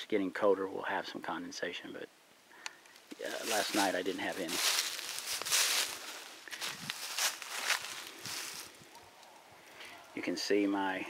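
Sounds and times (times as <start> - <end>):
footsteps in dry leaves: 3.1 - 8.9.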